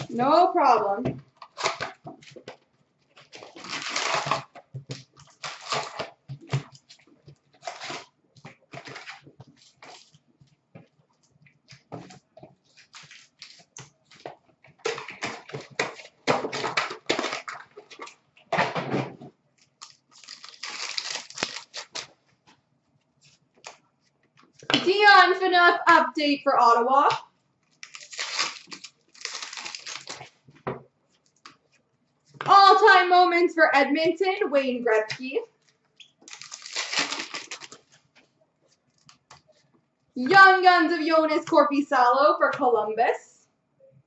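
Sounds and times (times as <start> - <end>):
foil wrappers tearing and crinkling: 1.4 - 2.0, 3.2 - 7.0, 7.6 - 8.1, 12.7 - 14.2, 14.9 - 18.2, 19.7 - 22.2, 27.8 - 30.4, 36.2 - 38.0.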